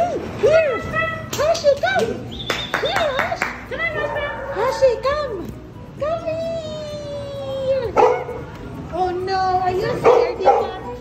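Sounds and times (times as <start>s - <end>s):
dogs howling: 4.0s - 5.1s.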